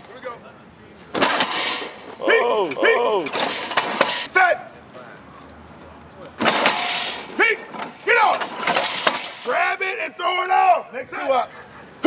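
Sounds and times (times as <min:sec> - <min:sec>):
men shouting: 0:02.1 - 0:03.5, 0:07.3 - 0:08.5, 0:09.4 - 0:11.4.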